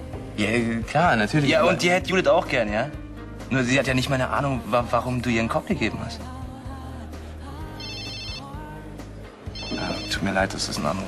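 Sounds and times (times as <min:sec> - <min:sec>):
mobile phone ringing: 0:07.8 - 0:08.6, 0:09.5 - 0:10.5.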